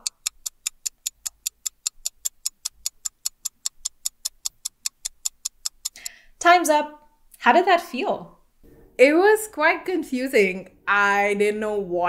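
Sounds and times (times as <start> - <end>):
timer ticking: 0.0 - 6.7.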